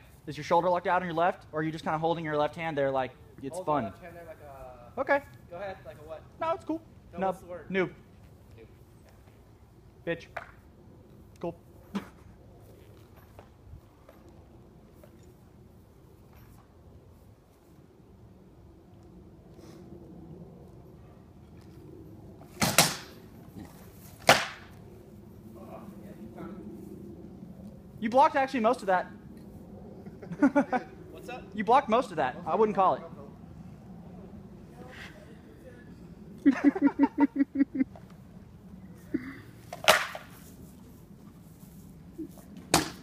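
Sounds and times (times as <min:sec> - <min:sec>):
sword blows cracking on shield: 0:39.8 - 0:40.3.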